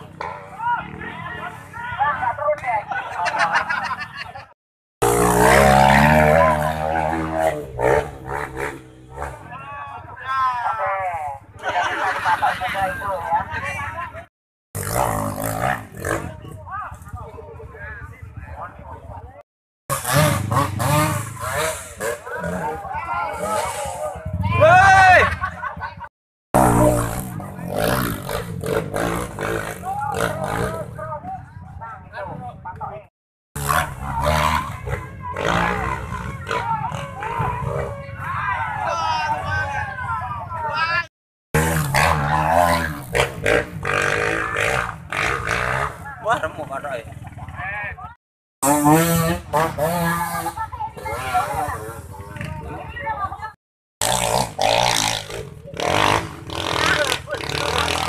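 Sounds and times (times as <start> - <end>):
dirt bike engine revving: 5.0 - 9.5, 14.8 - 16.5, 19.9 - 25.2, 26.5 - 31.0, 33.6 - 40.4, 41.5 - 47.6, 48.6 - 52.6, 54.0 - 58.0
voices shouting: 21.4 - 26.0, 33.9 - 41.1.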